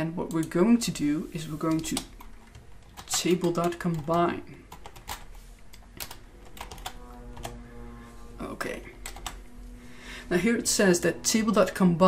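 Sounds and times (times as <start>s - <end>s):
computer keyboard typing: 1.7s - 7.5s, 9.0s - 9.4s.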